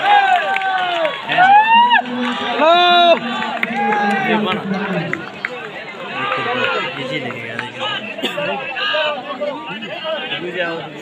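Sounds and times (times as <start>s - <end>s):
murmur of outdoor crowd: 0.0s - 11.0s
people talking and calling out: 1.2s - 11.0s.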